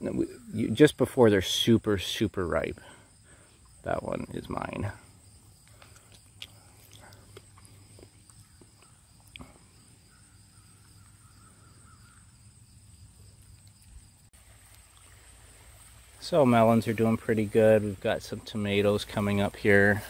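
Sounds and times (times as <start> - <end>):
high insect trill: 0.0 - 20.0.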